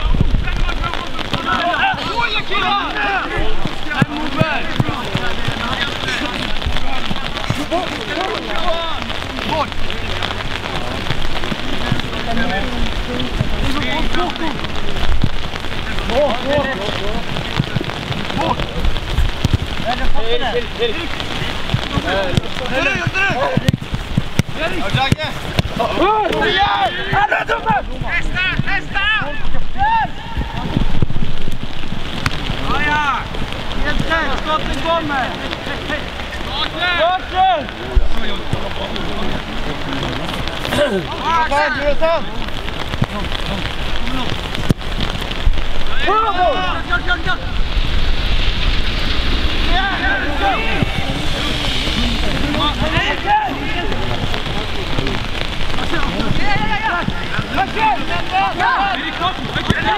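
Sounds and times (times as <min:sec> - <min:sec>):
voices calling out: 0:00.0 - 0:31.0, 0:31.6 - 0:59.9
rain on an umbrella: 0:00.0 - 0:59.9.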